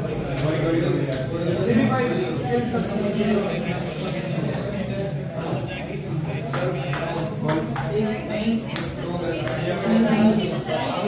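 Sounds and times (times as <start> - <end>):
murmuring voices: 0.0 - 11.0
table tennis ball clicking: 8.8 - 9.8.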